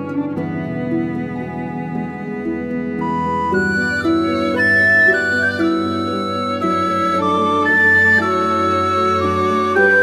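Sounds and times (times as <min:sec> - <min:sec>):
bowed strings playing slow notes: 0:00.0 - 0:10.0.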